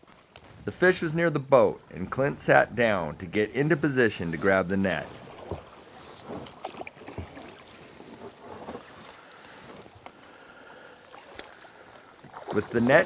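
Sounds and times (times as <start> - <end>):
water lapping against hull: 3.3 - 13.0.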